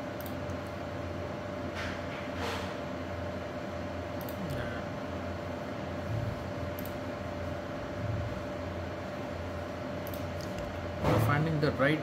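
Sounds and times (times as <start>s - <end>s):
machine hum with steady tone: 0.0s - 12.0s.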